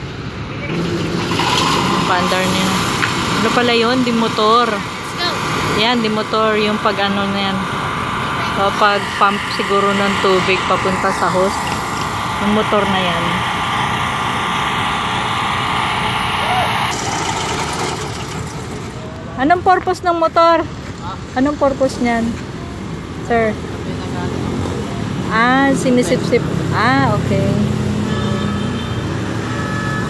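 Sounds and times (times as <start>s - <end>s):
small water pump engine running: 0.7s - 19.2s.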